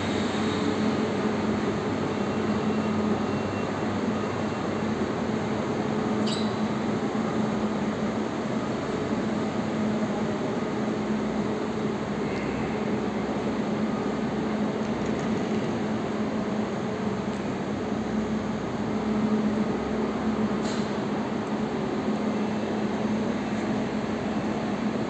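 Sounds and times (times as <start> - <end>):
electric trains humming: 0.0 - 25.0.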